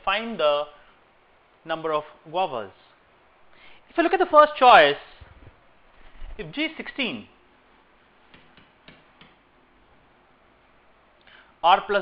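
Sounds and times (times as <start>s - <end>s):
low hiss: 0.0s - 12.0s
stylus tapping on tablet: 8.3s - 9.4s.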